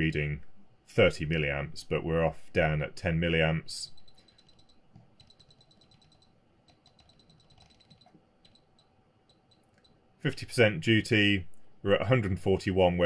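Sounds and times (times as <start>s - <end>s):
faint control ticks: 4.0s - 10.0s.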